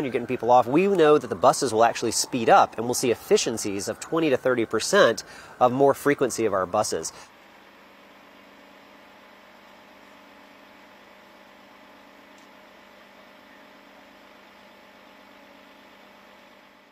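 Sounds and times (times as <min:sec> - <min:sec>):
bus idling: 0:00.0 - 0:14.2.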